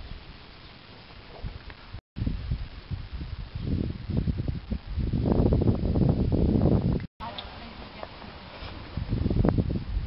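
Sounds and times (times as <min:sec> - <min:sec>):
wind buffeting microphone: 0:01.2 - 0:07.1, 0:08.7 - 0:10.0.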